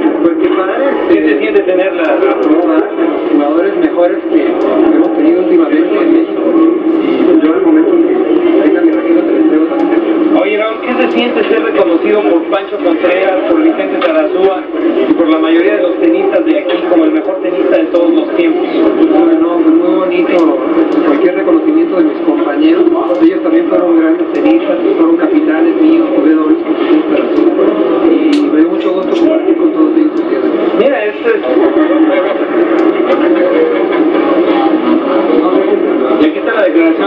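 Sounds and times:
man talking: 0.0 - 37.0.

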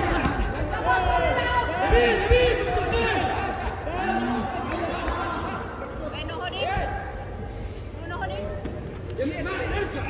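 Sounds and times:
echoing shouts of spectators: 0.0 - 5.8.

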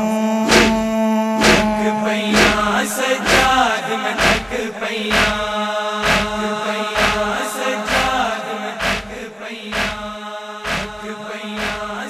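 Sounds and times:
man chanting: 0.0 - 12.0
hands striking chest: 0.5 - 0.8, 1.4 - 1.7, 2.4 - 2.6
held drone: 6.0 - 6.4, 8.8 - 9.1, 9.7 - 12.0.

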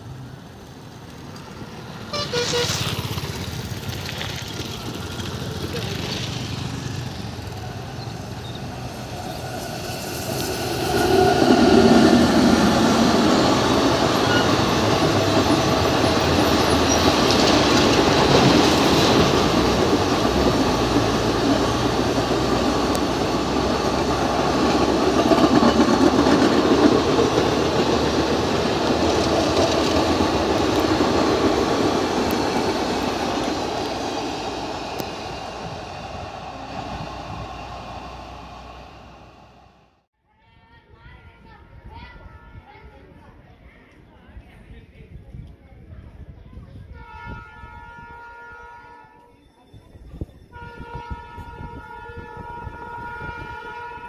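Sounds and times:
wheels running on track: 0.0 - 40.0
train passing at speed: 0.0 - 40.1.

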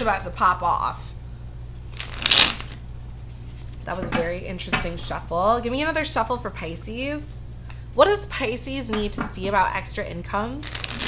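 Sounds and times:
cards being riffle-shuffled: 1.9 - 2.8, 10.6 - 11.0.

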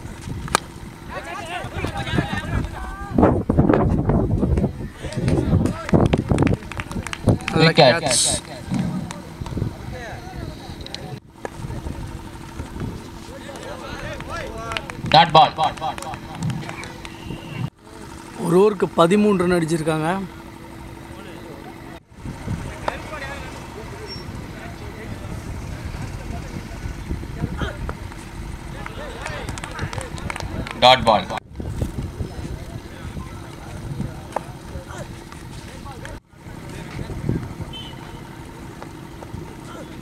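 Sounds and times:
crowd chatter outdoors: 0.0 - 40.0
steady low hum: 0.0 - 40.0
wind rumble on microphone: 1.6 - 13.3, 22.1 - 38.0
distant voices calling out: 4.6 - 40.0.

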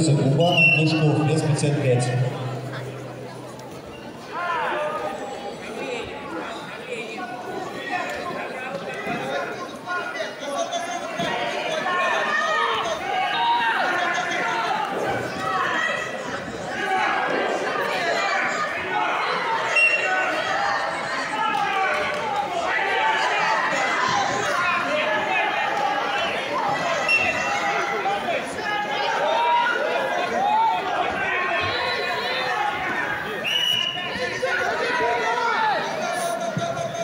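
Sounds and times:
people shouting in echoing hall: 4.2 - 6.5, 9.1 - 37.0.

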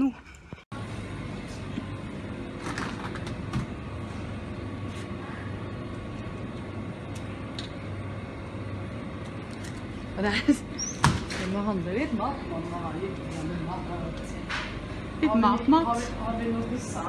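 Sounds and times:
refrigeration and ventilation hum: 0.0 - 17.0.

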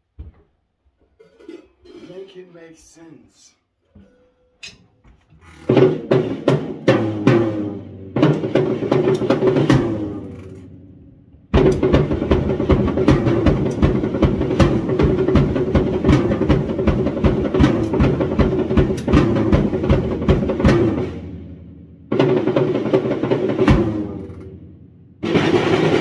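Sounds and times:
drum kit and cymbals: 5.6 - 10.8, 11.5 - 26.0.

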